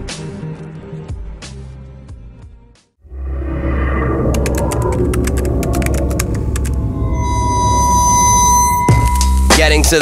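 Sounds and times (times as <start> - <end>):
low rumbling drone: 3.0 - 9.6.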